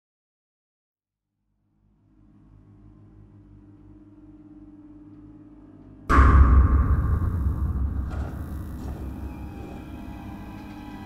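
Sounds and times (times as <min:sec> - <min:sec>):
low droning music: 0:01.5 - 0:11.0
deep boom with long rumble: 0:06.1 - 0:10.8.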